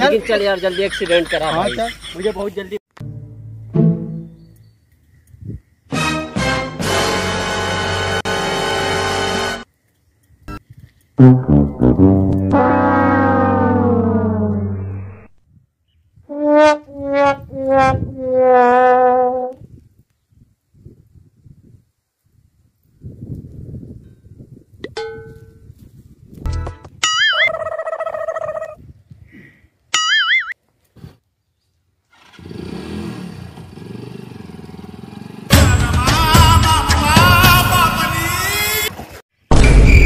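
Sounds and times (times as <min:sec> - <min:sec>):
sad trombone sliding down: 0:11.2 - 0:15.3
warbling whistle sound effects: 0:14.6 - 0:15.3
motorcycle engine approaching: 0:32.1 - 0:35.6.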